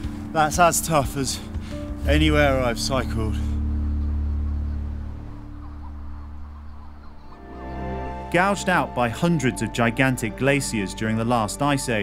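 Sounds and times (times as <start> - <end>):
soft background music: 0.0 - 12.0
faint bird chirps: 3.3 - 8.8.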